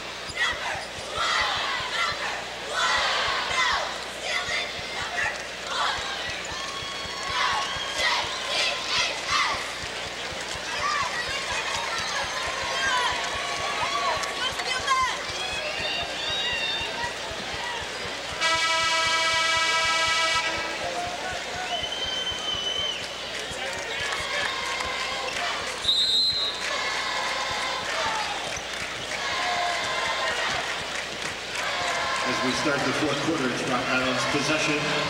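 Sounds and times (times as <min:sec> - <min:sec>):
crowd voices and shouts: 0:00.0 - 0:35.0
arena horn blast: 0:18.4 - 0:21.2.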